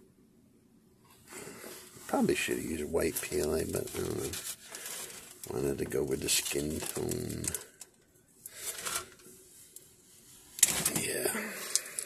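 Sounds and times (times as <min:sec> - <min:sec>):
hands rustling plastic part: 0:03.2 - 0:09.9.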